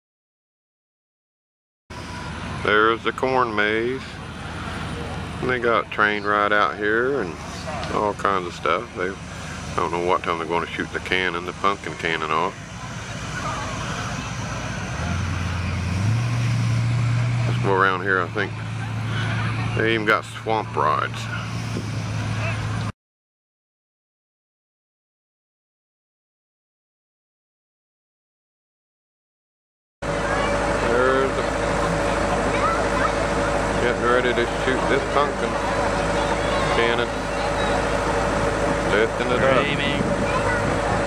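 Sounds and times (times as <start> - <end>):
engine humming: 1.9 - 22.9, 30.0 - 41.0
noisy background: 1.9 - 22.9, 30.0 - 41.0
people talking: 2.6 - 15.9, 17.2 - 21.6, 22.3 - 22.9, 30.1 - 41.0.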